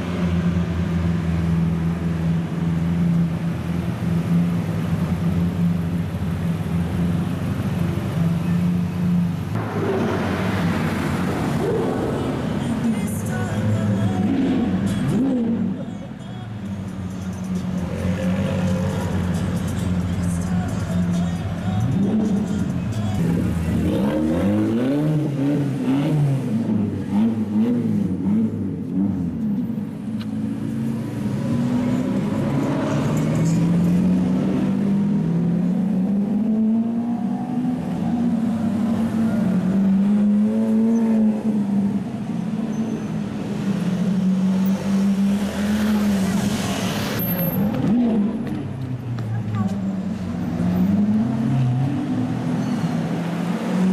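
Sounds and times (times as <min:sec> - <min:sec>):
car engine revving: 0:09.5 - 0:15.8, 0:21.8 - 0:42.6.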